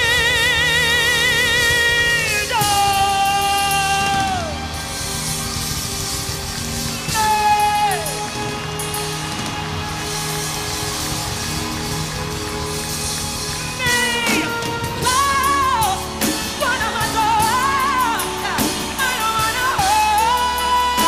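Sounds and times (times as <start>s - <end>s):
live band playing: 0.0s - 21.0s
woman singing with vibrato: 13.8s - 21.0s.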